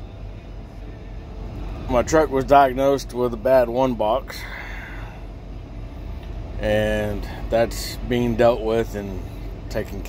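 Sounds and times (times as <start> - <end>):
diesel truck engine idling: 0.0 - 10.0.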